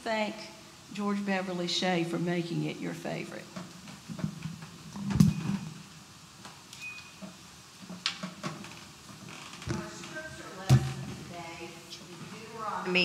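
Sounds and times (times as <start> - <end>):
microphone handling thumps: 4.0 - 5.8, 9.6 - 11.3.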